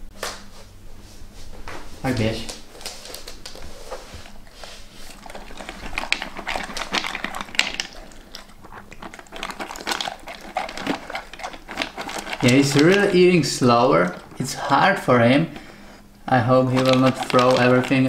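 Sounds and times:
dog crunching dry kibble: 2.4s - 15.7s, 16.3s - 18.0s
kibble clicking in bowl: 5.2s - 14.5s, 16.5s - 18.0s.

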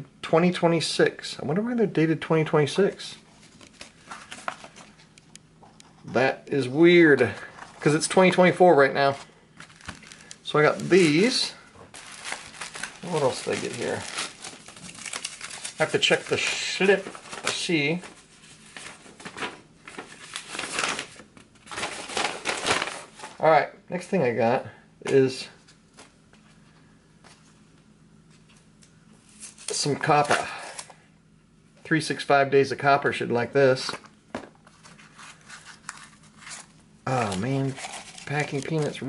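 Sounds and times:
paper rustling and crinkling: 3.3s - 5.1s, 7.1s - 23.4s, 34.6s - 39.0s.

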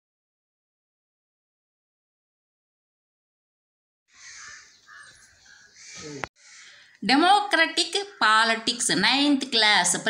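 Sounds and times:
crow cawing: 4.1s - 7.0s, 8.0s - 8.6s.

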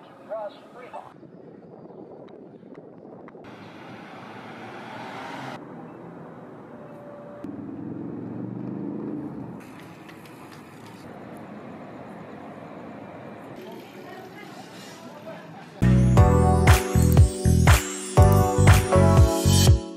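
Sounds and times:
distant traffic hum: 3.4s - 15.1s.

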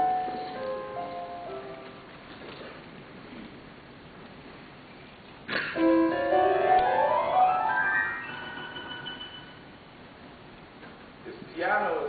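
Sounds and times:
piano upward run of notes: 0.0s - 2.2s, 5.8s - 9.8s.

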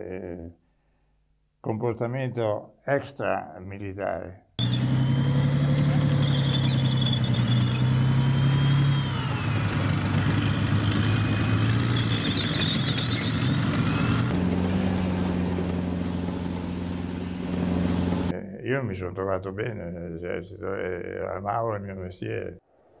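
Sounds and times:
tracked vehicle engine running: 4.6s - 18.3s.

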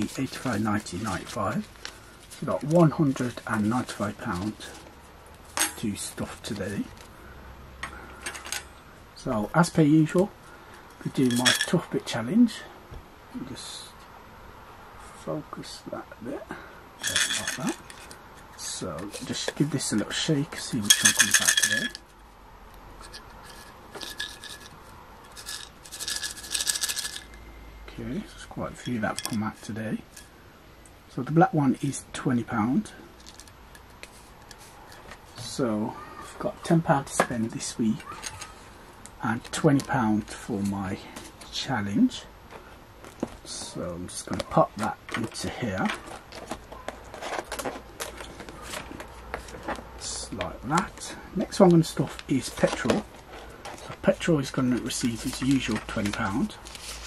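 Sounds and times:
plastic wallet rustling and crackling: 0.0s - 5.8s, 42.4s - 57.0s.

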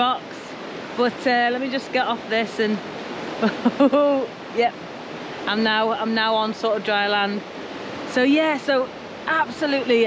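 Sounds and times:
river running over rocks: 0.0s - 10.0s
woman laughing: 3.4s - 4.3s.

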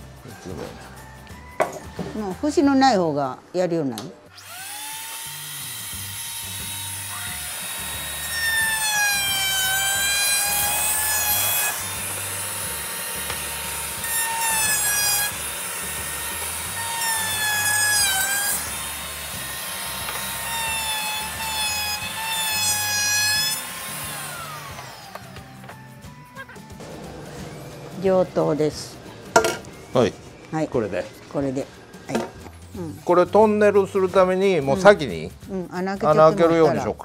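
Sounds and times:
background music with low beat: 0.0s - 3.3s, 24.3s - 37.0s
router bit cutting wood: 4.3s - 26.1s
router whining: 4.3s - 30.5s.

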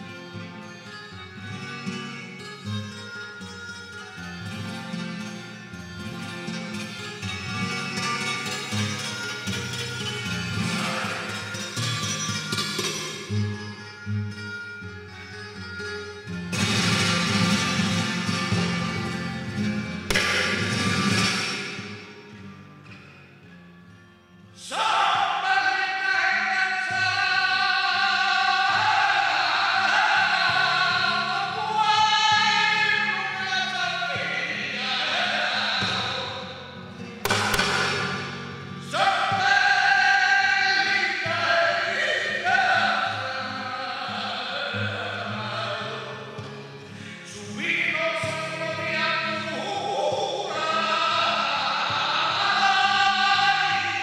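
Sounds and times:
flamenco guitar playing: 0.0s - 54.0s.

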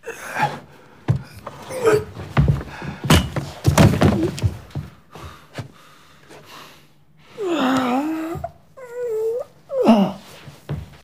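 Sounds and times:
man moaning in pain: 7.4s - 8.4s.

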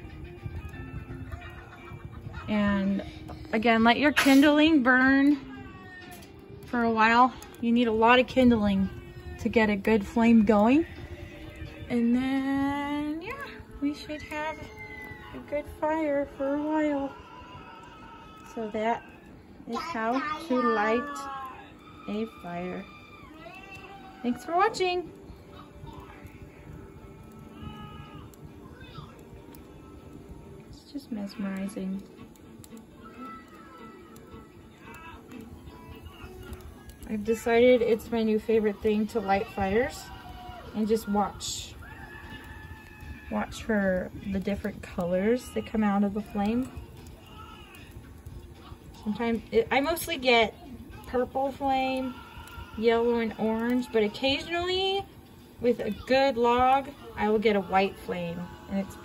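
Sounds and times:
quiet background music: 0.0s - 59.0s
wood fire crackling: 0.0s - 59.0s.

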